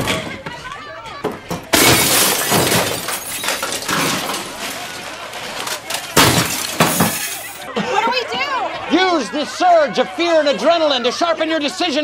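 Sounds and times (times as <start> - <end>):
glass shattering: 1.7 - 7.6.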